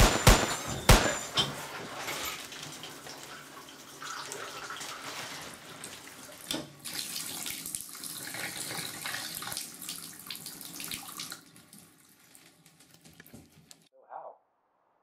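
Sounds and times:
shower water spraying into bathtub: 0:01.7 - 0:13.6
water trickle: 0:02.2 - 0:13.7.

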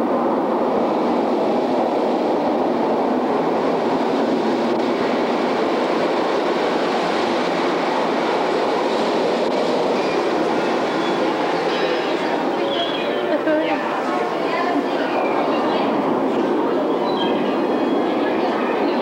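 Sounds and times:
rushing wind and water roar: 0:00.0 - 0:19.0.

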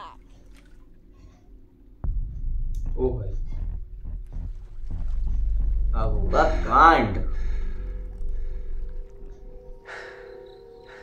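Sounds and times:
low rumbling drone: 0:00.2 - 0:11.0.

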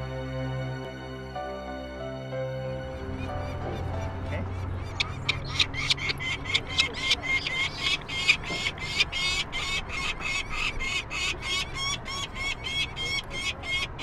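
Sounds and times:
falcon chicks calling: 0:03.0 - 0:14.0.

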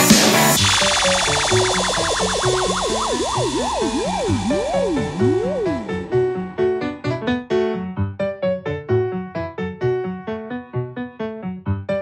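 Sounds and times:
repeating synth chords: 0:00.6 - 0:07.2
warbling synth line: 0:00.6 - 0:07.2.

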